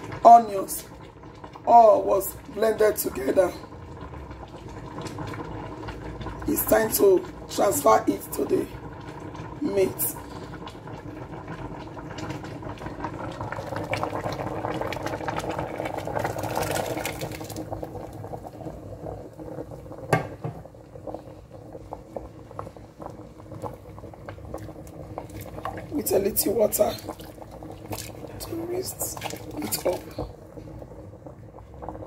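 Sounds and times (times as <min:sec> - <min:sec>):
soup bubbling in a pot: 0:00.0 - 0:32.0
puree pouring from metal bowl: 0:26.7 - 0:30.4.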